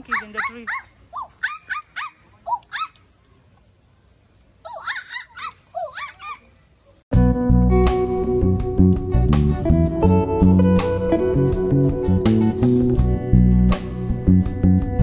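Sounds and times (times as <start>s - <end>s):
high-pitched animal calls: 0.0s - 3.0s, 4.6s - 6.5s
guitar music: 7.1s - 15.0s.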